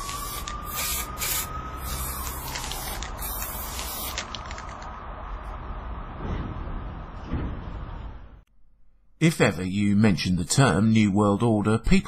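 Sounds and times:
spray paint can hissing: 0.0s - 4.8s.

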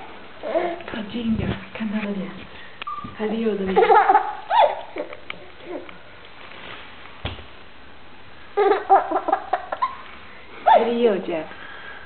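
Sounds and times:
dog whining: 2.9s - 3.2s.

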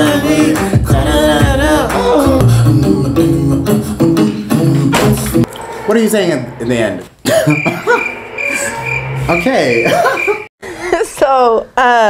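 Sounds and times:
music playing: 0.0s - 10.5s
man laughing: 7.2s - 8.8s, 9.7s - 10.5s.

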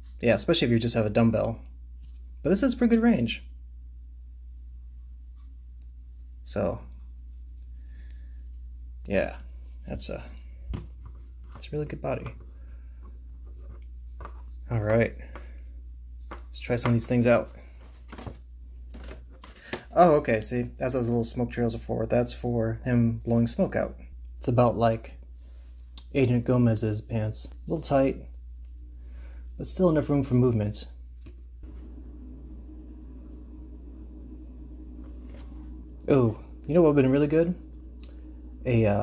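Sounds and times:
steady low electrical hum: 0.0s - 39.0s.

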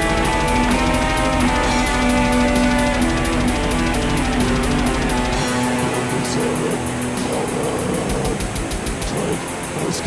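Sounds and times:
distorted guitars: 0.0s - 10.0s
drums: 0.0s - 10.0s
fast cymbal beat: 0.0s - 10.0s.

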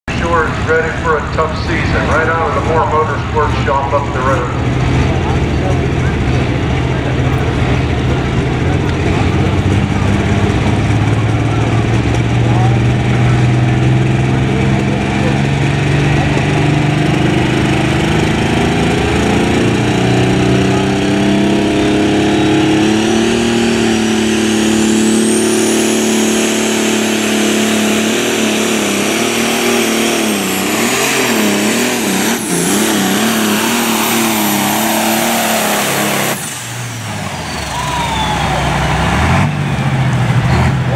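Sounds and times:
tractor engine at full throttle: 0.0s - 40.9s
high whine: 14.4s - 39.0s.

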